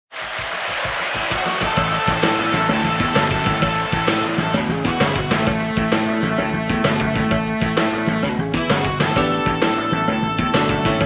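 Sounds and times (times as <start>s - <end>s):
film song instrumental music: 1.2s - 11.0s.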